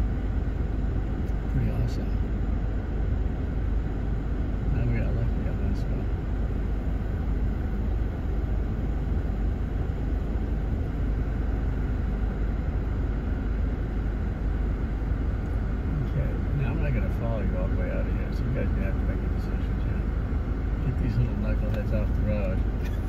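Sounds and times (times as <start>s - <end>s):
vehicle engine idling: 0.0s - 23.0s.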